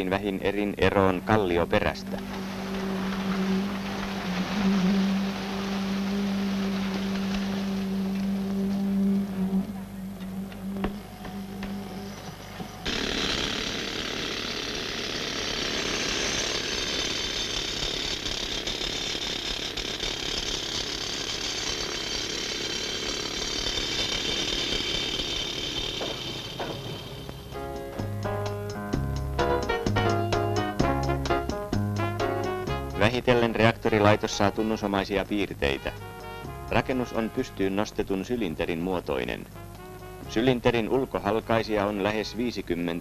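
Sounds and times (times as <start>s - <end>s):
construction machinery humming: 0.0s - 43.0s
loud hissy machine noise: 1.2s - 28.4s.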